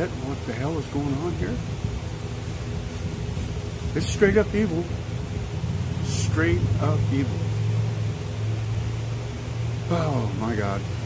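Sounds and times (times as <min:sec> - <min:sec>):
faint even hum: 0:00.0 - 0:11.0.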